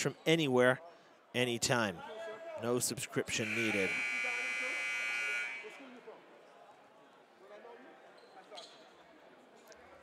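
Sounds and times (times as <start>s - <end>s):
scoreboard buzzer: 3.4s - 5.8s.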